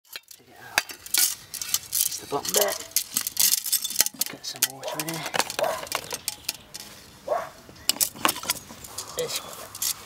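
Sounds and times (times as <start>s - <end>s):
metallic clinks and jangling: 0.1s - 7.0s.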